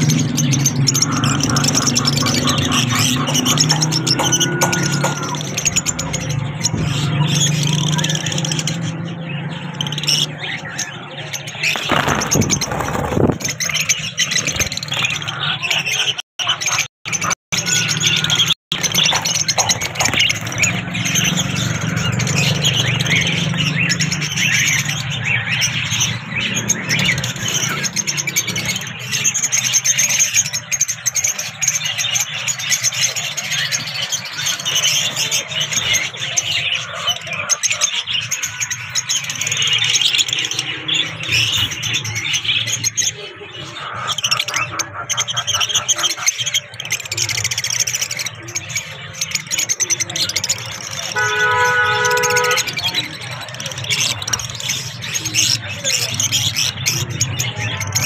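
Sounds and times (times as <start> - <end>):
lovebirds chattering: 0.0 - 58.0.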